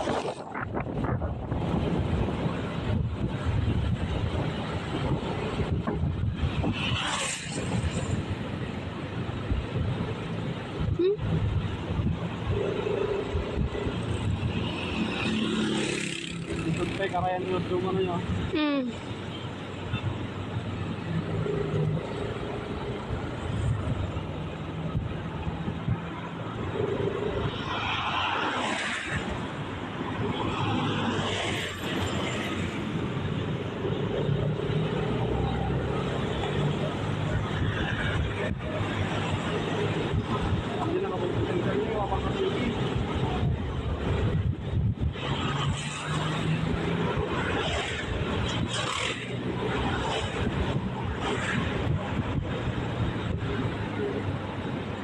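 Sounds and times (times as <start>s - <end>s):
car driving on highway: 0.0s - 55.0s
rushes of noise: 0.0s - 55.0s.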